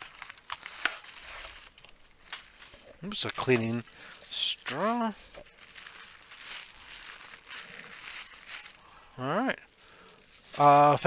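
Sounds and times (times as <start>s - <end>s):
packing material crinkling: 0.0s - 11.0s.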